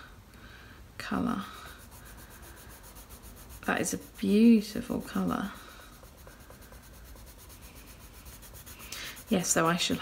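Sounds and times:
pencil scratching on paper: 1.5 - 10.0.

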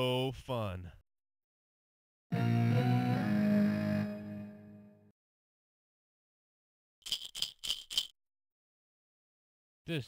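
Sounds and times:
toy rattle shaken: 7.0 - 8.2.

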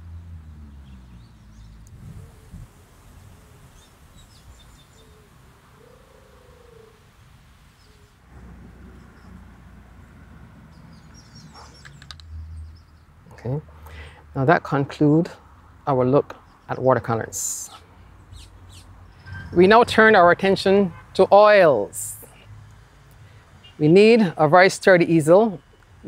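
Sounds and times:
birds chirping: 0.0 - 8.2, 8.9 - 14.2, 15.9 - 21.4
low steady rumble: 8.2 - 11.4.

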